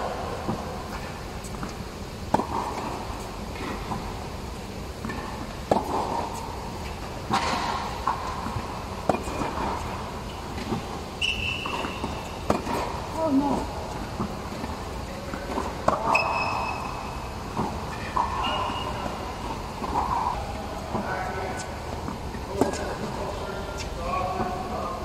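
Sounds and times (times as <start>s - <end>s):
tennis balls hit and bouncing: 0.0s - 24.9s
high squeak: 16.1s - 16.9s, 18.4s - 19.0s.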